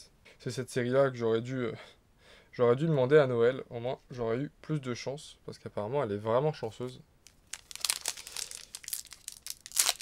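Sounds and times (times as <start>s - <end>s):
foil wrapper tearing and crinkling: 7.3s - 10.0s.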